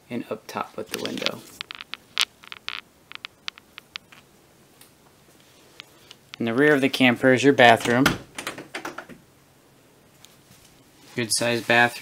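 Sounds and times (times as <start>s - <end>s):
faint irregular clicks: 0.9s - 6.5s.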